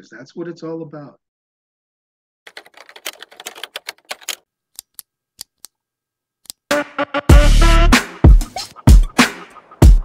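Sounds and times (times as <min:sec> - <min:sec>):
keystroke clicks: 0:02.5 - 0:05.6.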